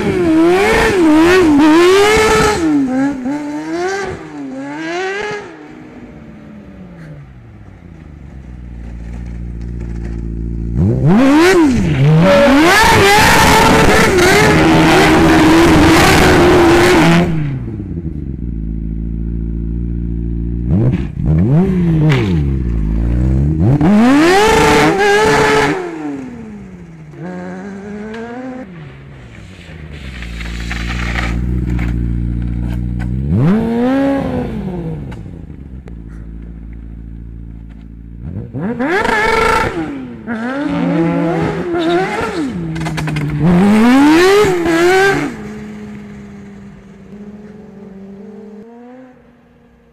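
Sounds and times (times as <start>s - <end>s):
engine revving hard: 10.8s - 17.5s, 20.7s - 26.4s, 33.2s - 35.1s, 38.2s - 42.6s, 43.4s - 45.4s.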